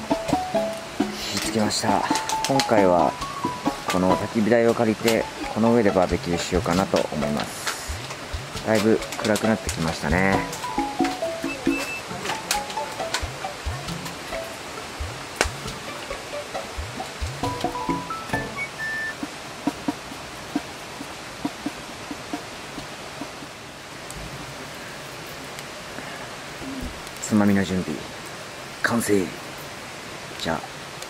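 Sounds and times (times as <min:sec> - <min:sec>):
wood fire crackling and popping: 0:00.0 - 0:16.2, 0:25.2 - 0:25.8, 0:26.6 - 0:28.4
light background music: 0:00.0 - 0:22.7.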